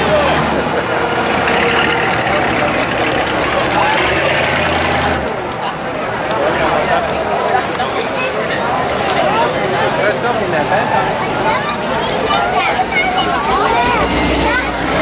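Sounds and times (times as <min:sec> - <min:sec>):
car engine humming: 0:00.0 - 0:09.1
spectators talking: 0:00.0 - 0:15.0.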